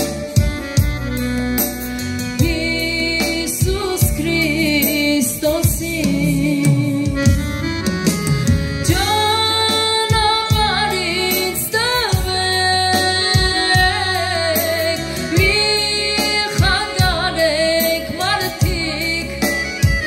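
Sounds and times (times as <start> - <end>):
keyboard chords: 0.0 - 20.0
steady drum beat: 0.0 - 20.0
woman singing with vibrato: 2.4 - 8.2, 8.8 - 20.0.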